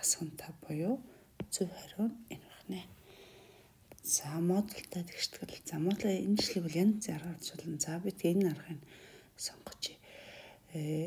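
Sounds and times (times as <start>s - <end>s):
narrator talking: 4.1s - 8.8s.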